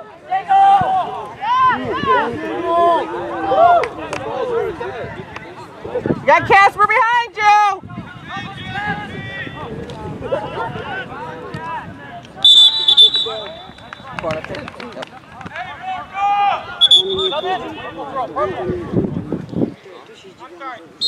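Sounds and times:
players and spectators calling out: 0.0 - 18.9
referee's whistle blasts: 12.4 - 14.2, 16.8 - 17.8.

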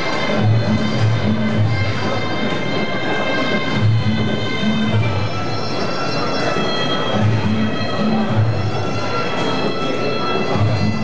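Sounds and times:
drums: 0.0 - 11.0
shrill reedy oboe: 0.0 - 11.0.

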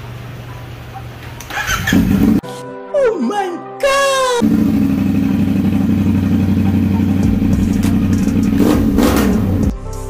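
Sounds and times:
motorcycle engine idling and revving: 1.5 - 2.4, 4.4 - 9.7.

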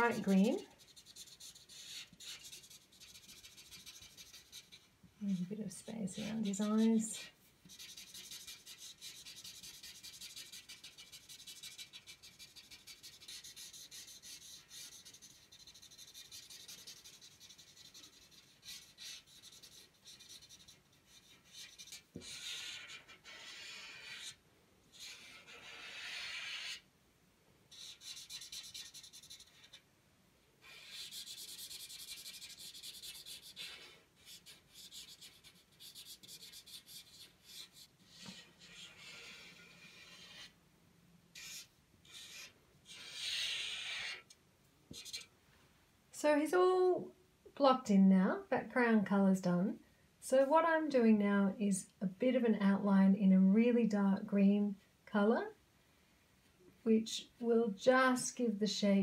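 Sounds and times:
marker rubbing on paper: 0.0 - 5.6, 6.2 - 7.0, 7.6 - 26.9, 27.7 - 29.8, 30.6 - 40.6, 41.3 - 45.3.

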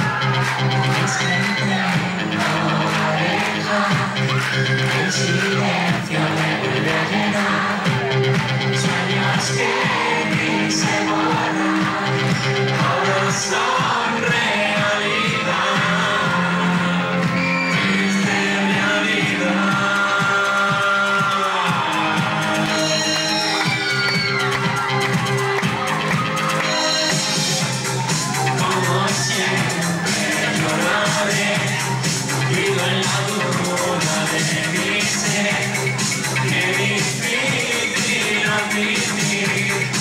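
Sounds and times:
crowd shouting and whooping: 0.0 - 40.0
synth-pop dance song: 0.0 - 40.0.

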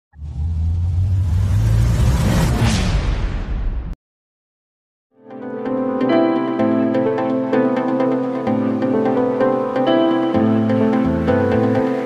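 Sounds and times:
deep rumbling bass swell: 0.1 - 4.0.

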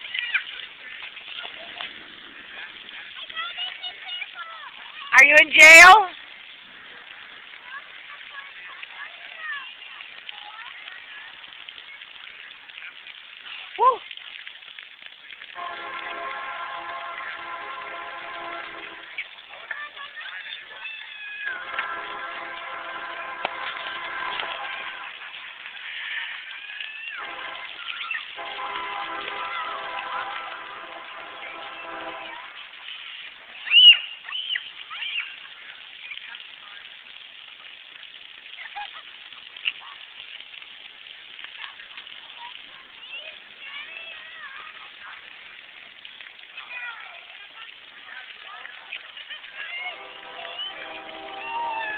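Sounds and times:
children squealing and shrieking: 19.6 - 21.6, 25.8 - 28.4, 33.6 - 35.6, 48.1 - 51.9.

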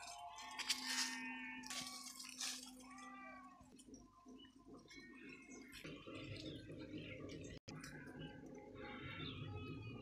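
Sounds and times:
sheep and goats bleating: 0.0 - 3.8.

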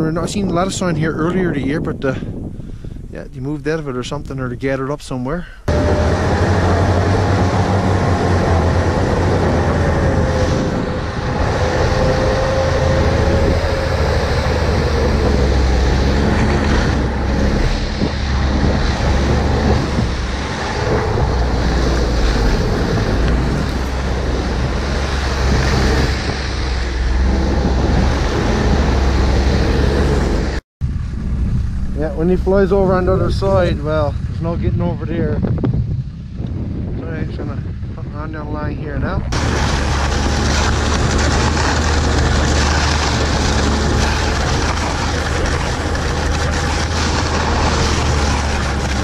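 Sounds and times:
wind on microphone: 0.0 - 49.0
snowmobile engine drone: 5.7 - 49.0.

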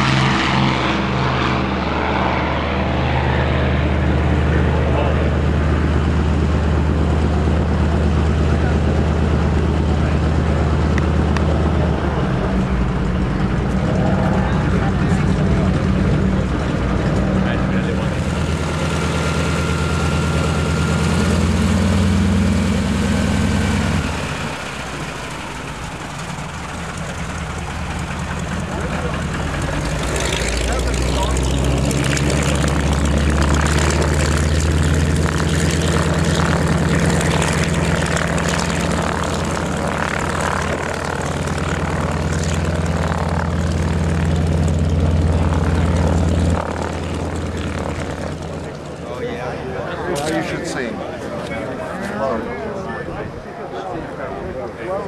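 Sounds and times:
radial piston aircraft engine: 0.0 - 53.4.

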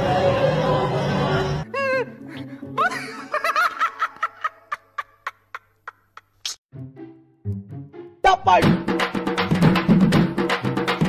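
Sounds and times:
man laughing hard: 1.7 - 6.3.

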